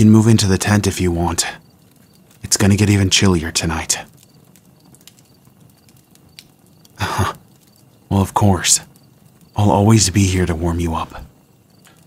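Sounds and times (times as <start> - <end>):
low even hiss: 0.0 - 12.0
soft ticks: 4.0 - 7.8, 11.7 - 12.0.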